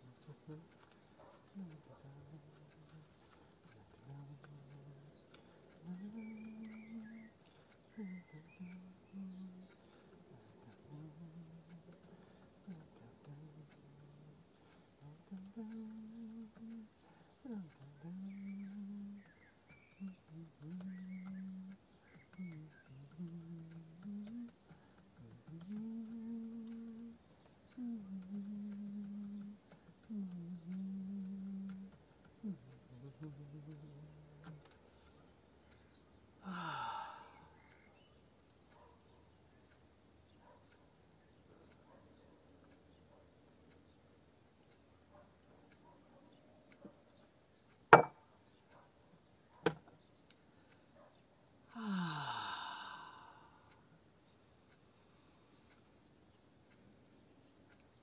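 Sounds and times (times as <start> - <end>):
person humming low notes: 0.0 - 0.7, 1.5 - 3.2, 3.8 - 5.2, 5.8 - 19.3, 20.0 - 21.8, 22.4 - 27.2, 27.8 - 34.6, 51.7 - 53.7
person sighing: 36.4 - 37.6, 51.7 - 53.7.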